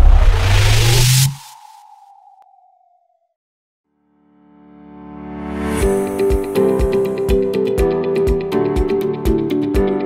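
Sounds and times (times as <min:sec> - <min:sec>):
deep rumble: 0:00.0 - 0:02.9
loud noisy whoosh: 0:00.0 - 0:03.1.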